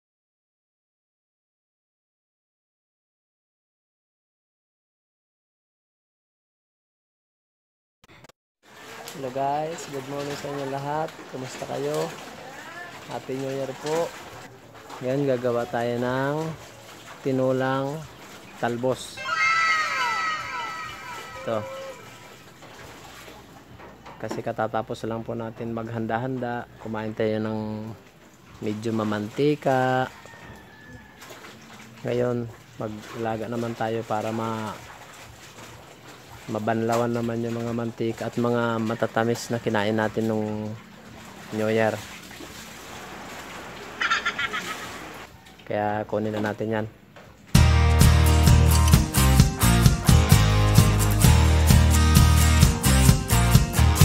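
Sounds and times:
high tones sliding down: 19.2s - 22.1s
high-pitched pulsing bird call: 19.2s - 22.3s.

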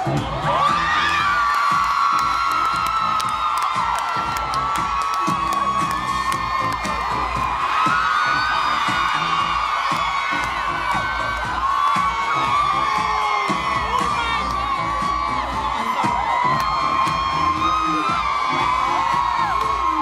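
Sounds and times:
crowd cheering and screaming: 0.0s - 20.0s
dance music with steady beat: 0.0s - 20.0s.

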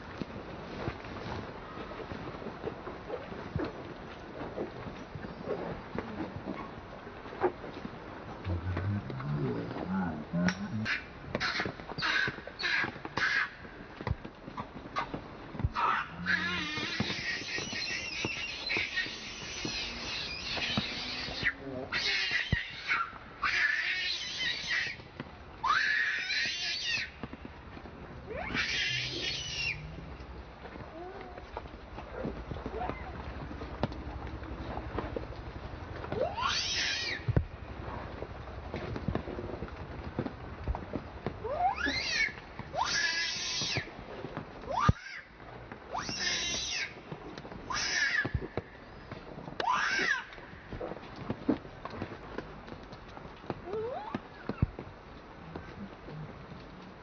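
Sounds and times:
baby monkey screaming: 10.8s - 13.6s, 15.8s - 25.0s, 25.6s - 27.1s, 28.3s - 29.8s, 36.2s - 37.3s, 41.5s - 43.9s, 44.7s - 45.2s, 45.9s - 47.0s, 47.7s - 48.3s, 49.6s - 50.3s.

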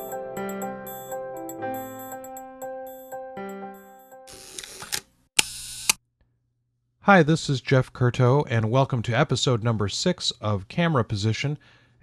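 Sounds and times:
camera shutter click: 4.3s - 6.0s.

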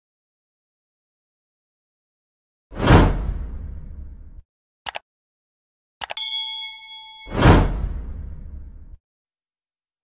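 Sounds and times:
bell-like ding: 6.2s - 8.0s.

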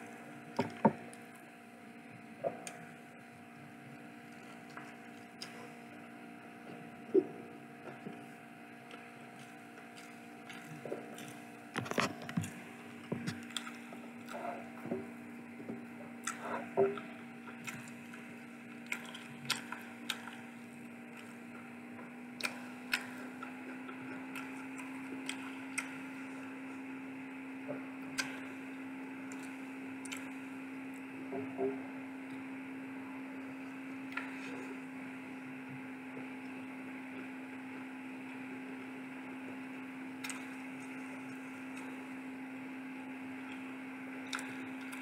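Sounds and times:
steady low hum: 0.0s - 45.0s
chewing with wet mouth clicks: 8.9s - 14.6s, 16.2s - 21.6s, 22.4s - 26.1s, 28.1s - 28.6s, 29.3s - 30.4s, 40.2s - 42.0s, 44.3s - 45.0s.

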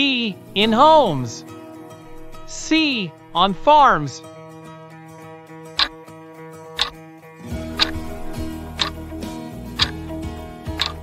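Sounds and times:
light background music: 0.0s - 11.0s
clock ticking: 7.8s - 9.0s, 10.8s - 11.0s.

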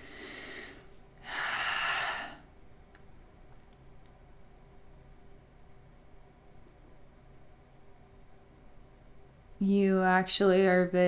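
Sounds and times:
woman breathing heavily: 0.0s - 2.5s.

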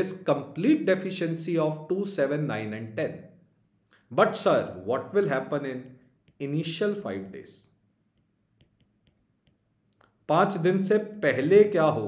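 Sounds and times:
stylus tapping on tablet screen: 7.9s - 10.0s.

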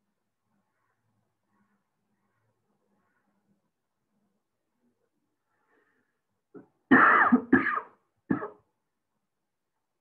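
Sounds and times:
man coughing: 6.9s - 8.6s.

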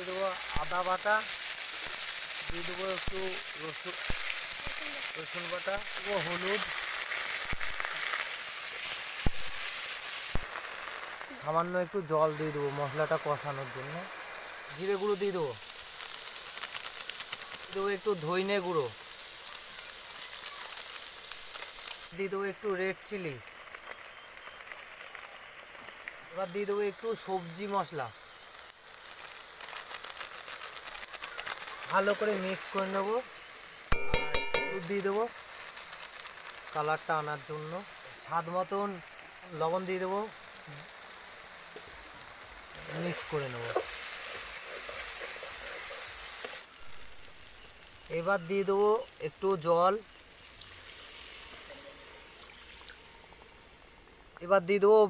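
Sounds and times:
spices sizzling in hot oil: 0.0s - 55.0s.

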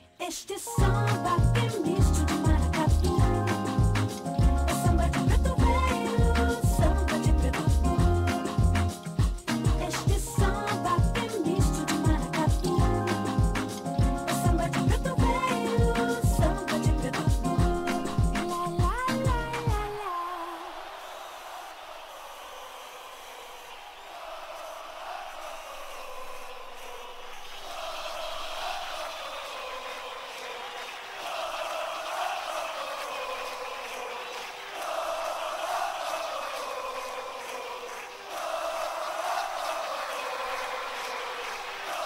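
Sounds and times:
stadium crowd chanting: 14.3s - 42.0s.

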